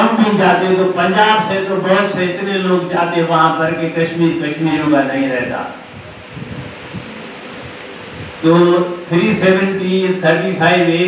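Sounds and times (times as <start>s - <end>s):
room noise: 0.0s - 11.0s
faint low rustles: 4.8s - 10.6s.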